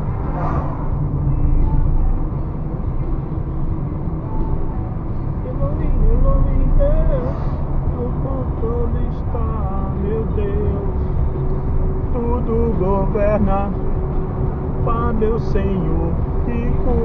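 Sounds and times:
car driving rumble: 0.0s - 17.0s.

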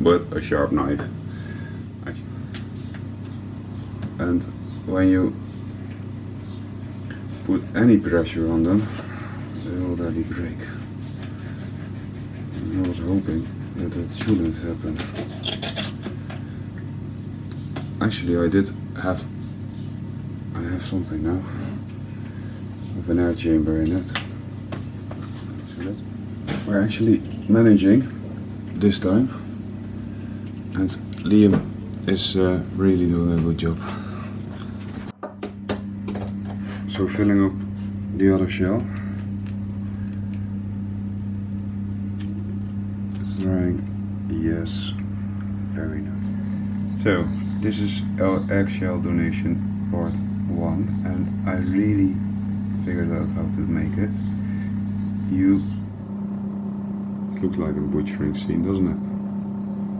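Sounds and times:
low electrical hum: 0.0s - 59.9s
knife scraping eggshell: 8.9s - 16.6s, 38.8s - 40.6s
eggshell cracking: 38.7s - 44.0s.

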